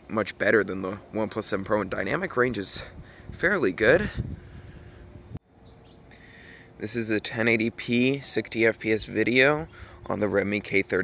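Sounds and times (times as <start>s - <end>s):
faint bird chirps: 5.5s - 6.3s.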